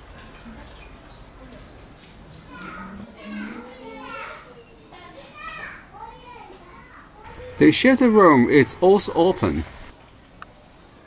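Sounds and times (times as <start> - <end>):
children talking and calling: 0.3 - 9.9.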